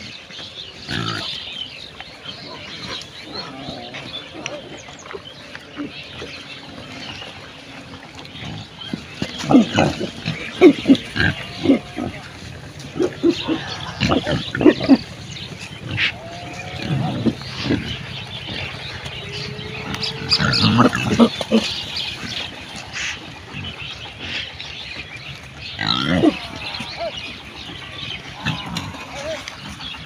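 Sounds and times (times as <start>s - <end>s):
pigs grunting: 0.8s - 1.6s, 2.2s - 30.0s.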